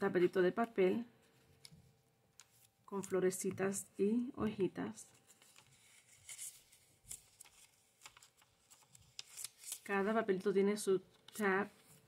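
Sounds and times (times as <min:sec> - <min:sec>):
paper pages rustling and flicking: 0:05.1 - 0:10.0.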